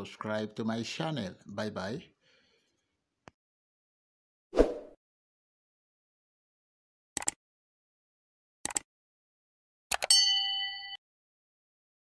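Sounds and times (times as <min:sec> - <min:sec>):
bright bell ding: 0:10.1 - 0:11.0.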